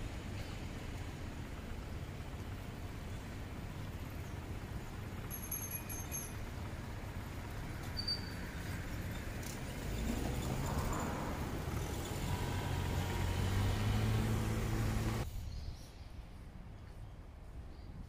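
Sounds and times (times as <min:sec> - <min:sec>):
motor vehicle engine rumble: 0:00.0 - 0:15.3.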